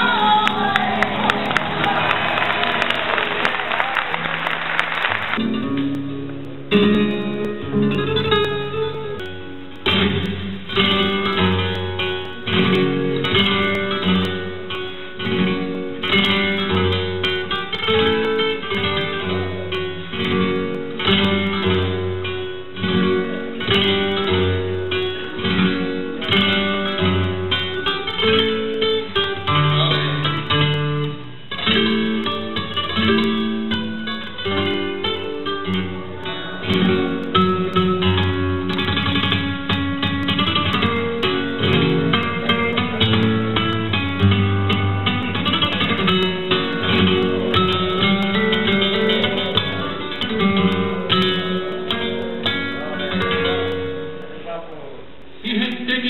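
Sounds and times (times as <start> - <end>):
flamenco guitar playing: 0.0 - 56.0.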